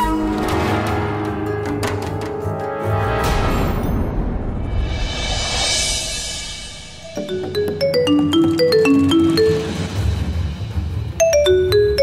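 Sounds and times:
marimba-like phone ringtone: 7.1s - 9.9s, 11.2s - 12.0s.

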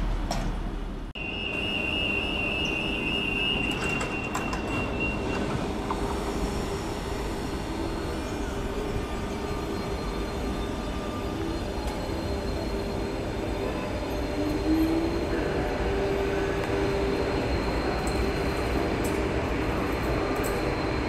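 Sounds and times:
train rumble and hum: 0.0s - 21.0s
train wheels squealing: 1.2s - 21.0s.

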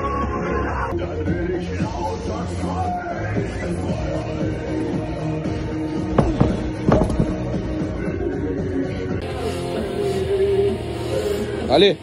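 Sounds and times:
background music: 0.0s - 12.0s
weight plate knocking on floor: 6.2s - 7.5s.

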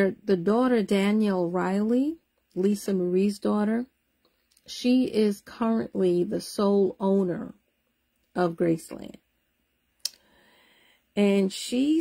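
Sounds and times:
faint low hiss: 0.0s - 12.0s.

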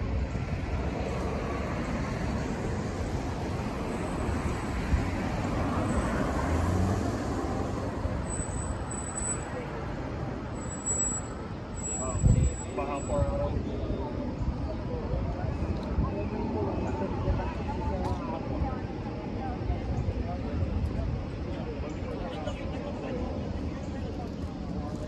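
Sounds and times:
car passing close by: 0.7s - 10.3s.

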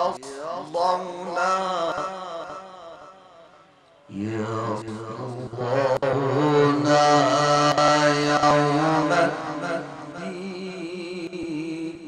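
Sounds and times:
man reciting melodically: 0.0s - 3.1s, 4.1s - 12.0s.

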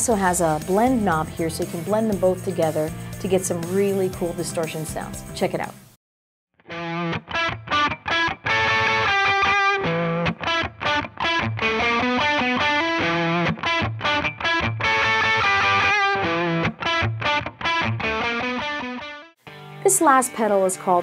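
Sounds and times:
distorted electric guitar riff: 6.6s - 20.0s.

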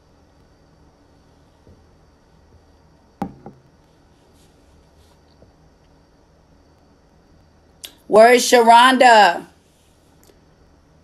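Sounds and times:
hard object knocking on tabletop: 3.2s - 3.7s.

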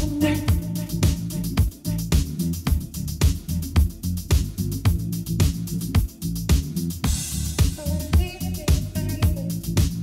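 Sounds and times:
bass line: 0.0s - 10.0s
kick drum beat: 0.0s - 10.0s.

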